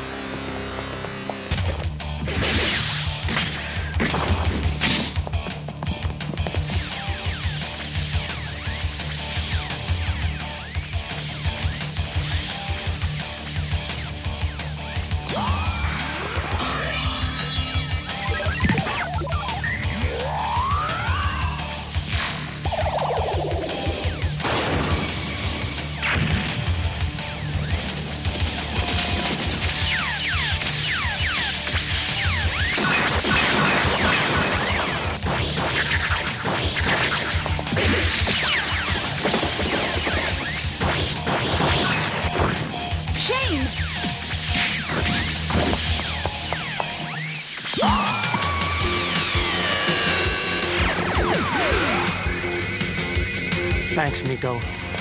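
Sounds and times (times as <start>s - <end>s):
action background music: 0.0s - 55.0s.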